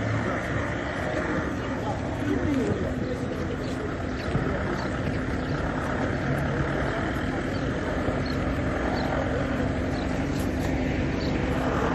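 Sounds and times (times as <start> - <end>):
vehicle engine running: 0.0 - 11.9.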